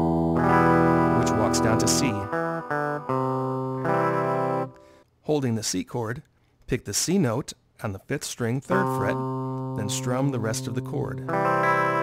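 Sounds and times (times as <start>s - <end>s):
guitar walking bass line: 0.0s - 4.7s, 8.7s - 12.0s
strummed guitar chords: 0.0s - 4.9s, 8.7s - 12.0s.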